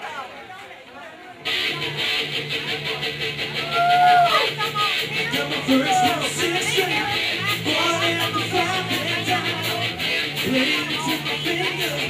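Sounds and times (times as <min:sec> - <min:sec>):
electric guitar bending notes: 0:01.4 - 0:12.0
repeating bass line: 0:01.5 - 0:12.0.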